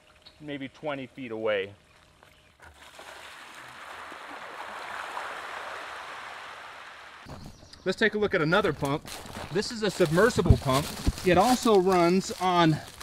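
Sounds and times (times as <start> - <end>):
water splashing from hose outlet: 2.6 - 7.2.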